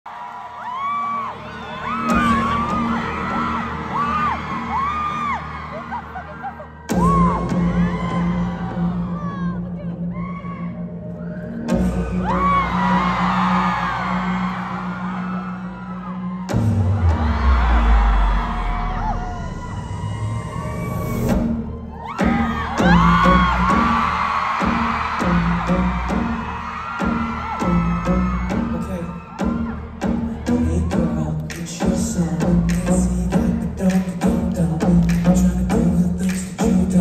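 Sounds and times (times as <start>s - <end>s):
crowd screaming and cheering: 0.0s - 37.0s
deep falling bass sweep: 16.5s - 21.8s
drum beat: 22.2s - 37.0s.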